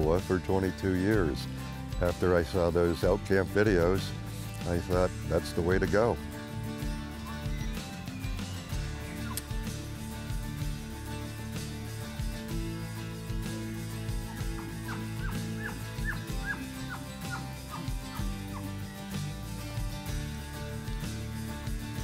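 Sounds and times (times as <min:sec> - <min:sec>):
background music with low drone: 0:00.0 - 0:22.0
high elk chirps: 0:07.1 - 0:08.2, 0:08.8 - 0:09.6, 0:14.2 - 0:18.7.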